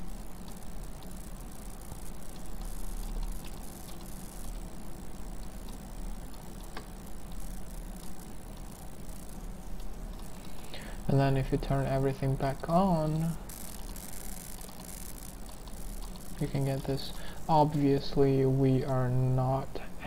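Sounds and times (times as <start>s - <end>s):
low electrical hum: 0.0s - 20.0s
microphone hiss: 0.0s - 20.0s
faint clicks: 2.2s - 4.4s, 5.4s - 10.8s.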